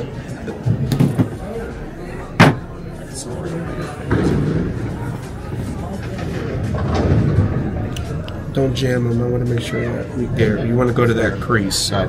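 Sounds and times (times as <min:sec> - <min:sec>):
indistinct talking: 0:00.0 - 0:12.0.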